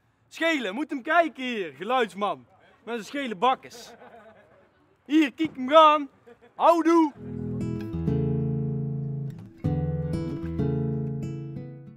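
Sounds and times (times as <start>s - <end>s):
acoustic guitar strummed chords: 7.2s - 11.9s.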